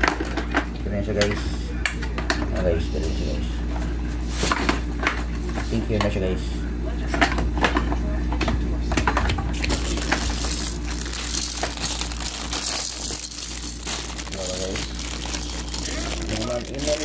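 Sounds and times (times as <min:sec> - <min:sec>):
crinkling: 0:09.6 - 0:17.0.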